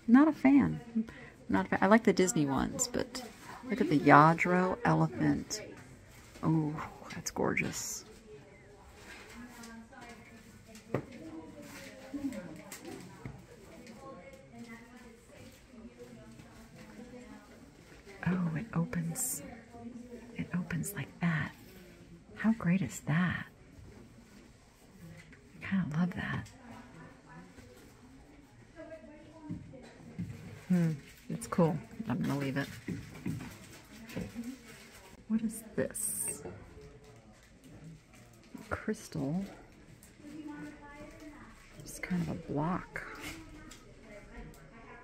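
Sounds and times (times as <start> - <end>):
people talking quietly: 0.0 - 45.0.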